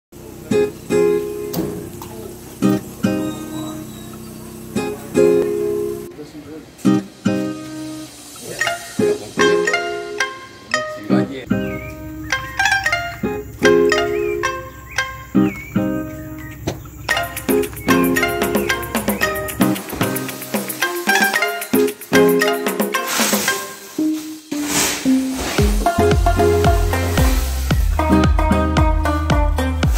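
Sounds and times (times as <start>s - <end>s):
electronic hiss: 0.2s - 10.8s, 11.5s - 29.9s
held synth notes: 0.2s - 29.9s
strummed acoustic guitar chords: 0.2s - 29.9s
deep bass line: 25.6s - 29.9s.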